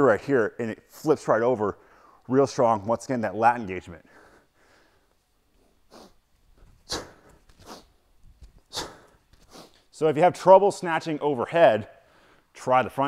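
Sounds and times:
man's sharp breaths: 4.0 - 8.0, 8.6 - 9.9, 12.0 - 12.6.

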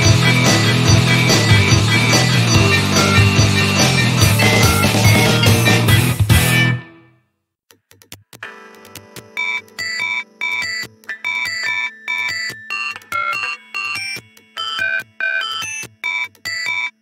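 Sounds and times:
beeping synthesizer pattern: 0.0 - 5.8.

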